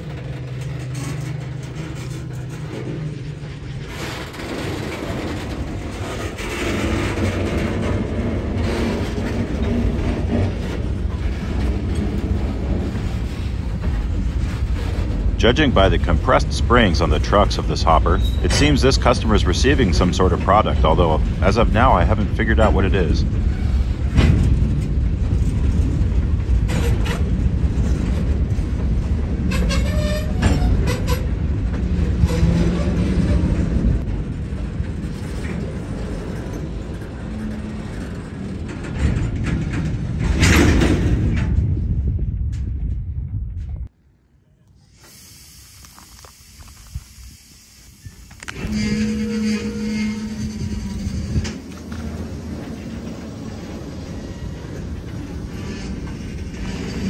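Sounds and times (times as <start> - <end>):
wheels squealing: 0.0 - 40.4, 45.9 - 57.0
freight train wheels rumbling: 0.0 - 57.0.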